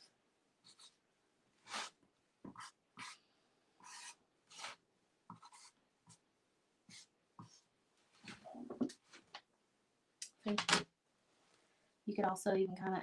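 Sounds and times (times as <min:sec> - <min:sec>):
marker scratching on wood: 0:00.6 - 0:01.0, 0:01.6 - 0:03.2, 0:03.8 - 0:06.2, 0:06.9 - 0:08.4.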